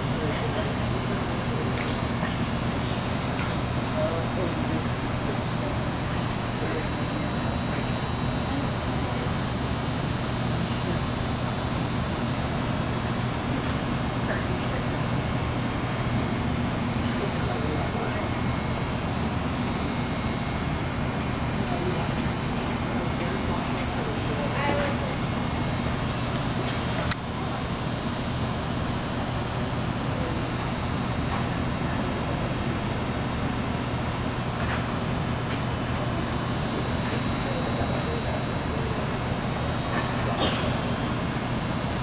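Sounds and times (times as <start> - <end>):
ventilation fans humming: 0.0 - 42.0.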